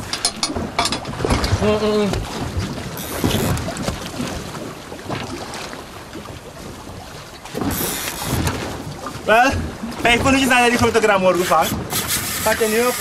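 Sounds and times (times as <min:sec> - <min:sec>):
sea water washing around boat: 0:00.0 - 0:13.0.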